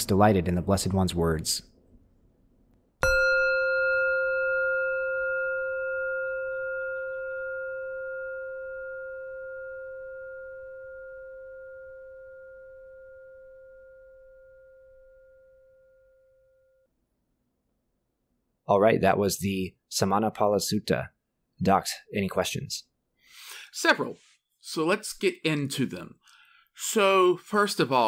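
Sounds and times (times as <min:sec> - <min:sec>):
singing bowl ringing: 0:03.0 - 0:16.9.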